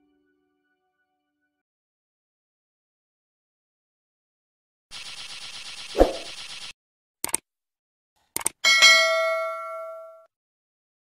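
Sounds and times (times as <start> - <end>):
mouse double click: 8.4 - 8.6
bright bell ding: 8.7 - 10.3.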